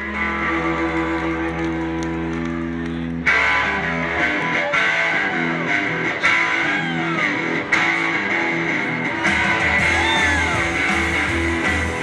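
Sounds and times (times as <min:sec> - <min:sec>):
rockabilly band playing: 0:00.0 - 0:12.0.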